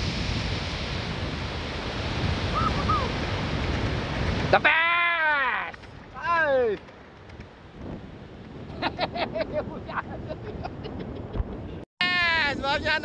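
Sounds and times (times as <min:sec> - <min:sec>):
steady surf noise: 0:00.0 - 0:13.0
wind on microphone: 0:00.0 - 0:13.0.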